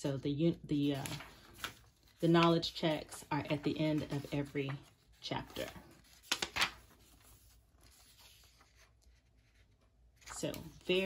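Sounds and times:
book pages rustling: 0:00.5 - 0:11.0.

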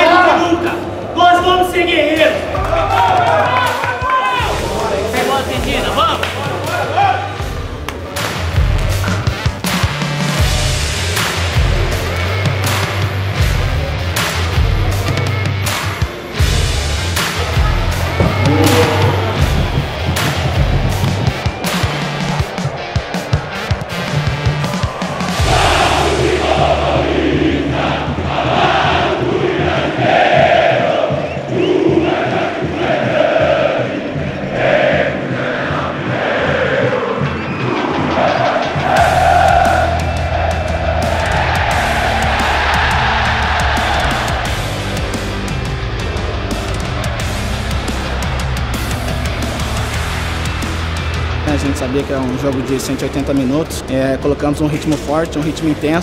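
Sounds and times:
music with heavy beat: 0:03.7 - 0:54.1
crowd singing a chant: 0:18.0 - 0:45.2.

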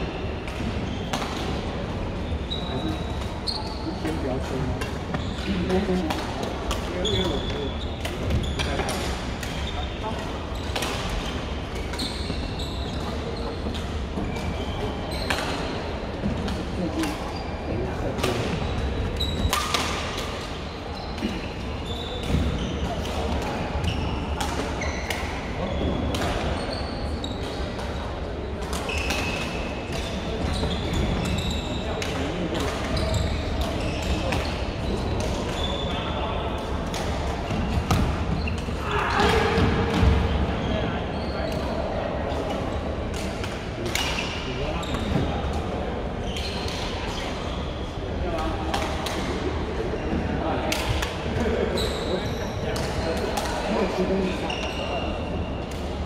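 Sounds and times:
sneakers squeaking on court floor: 0:00.0 - 0:04.4, 0:05.0 - 0:16.4, 0:17.0 - 0:27.8, 0:28.8 - 0:36.2, 0:36.9 - 0:41.8, 0:43.9 - 0:45.3, 0:46.2 - 0:47.9, 0:50.9 - 0:53.1, 0:54.4 - 0:55.8.

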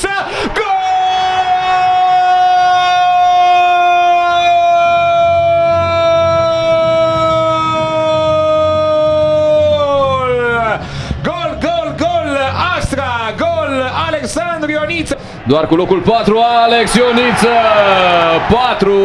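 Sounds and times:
stadium crowd cheering: 0:00.0 - 0:10.8, 0:14.7 - 0:19.0.

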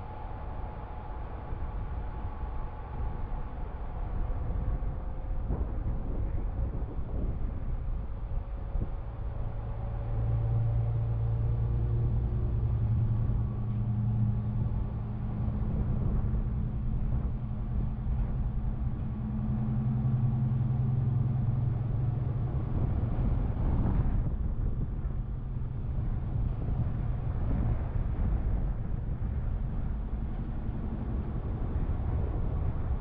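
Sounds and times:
vehicle engine hum: 0:00.0 - 0:33.0
wind and road noise: 0:00.0 - 0:33.0.

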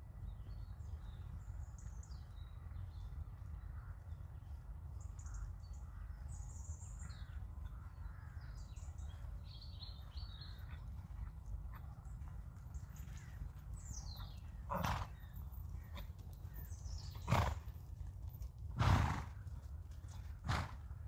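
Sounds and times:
horse snorting: 0:14.6 - 0:15.3, 0:17.2 - 0:17.7, 0:18.8 - 0:19.4, 0:20.4 - 0:20.8.

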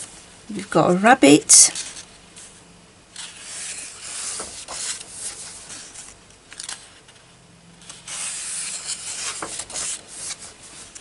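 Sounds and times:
hands rubbing on paper pages: 0:03.2 - 0:06.1, 0:08.0 - 0:11.0.

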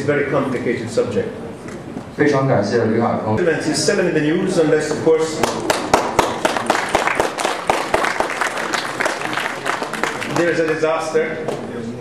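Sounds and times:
audience applauding: 0:05.3 - 0:11.6.

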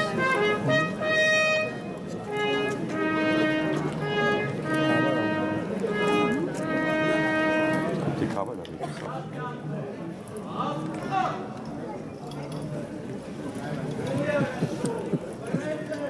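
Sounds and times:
trumpet signal long notes: 0:00.0 - 0:08.2
faint murmuring voices: 0:00.0 - 0:16.0.

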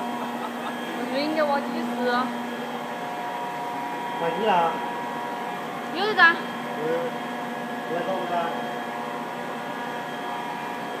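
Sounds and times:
motor whine: 0:00.0 - 0:11.0.

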